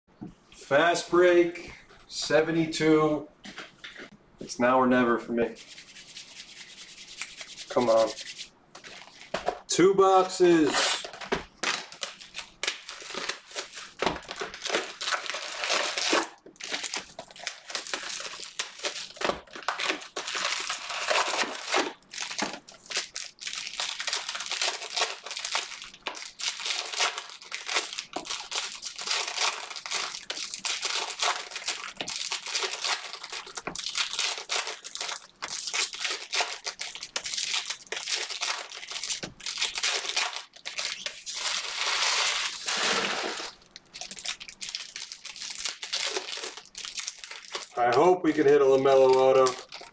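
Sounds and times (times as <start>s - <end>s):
plastic wrap crinkling and tearing: 10.4s - 49.9s.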